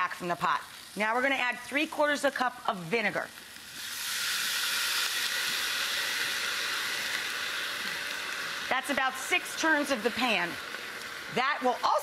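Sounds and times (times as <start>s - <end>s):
liquid sizzling in hot pan: 0.0s - 12.0s.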